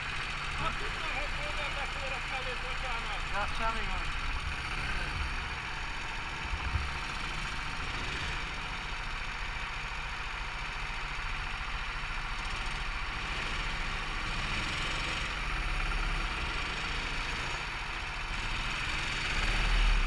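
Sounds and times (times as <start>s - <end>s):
go-kart engines idling: 0.0s - 20.0s.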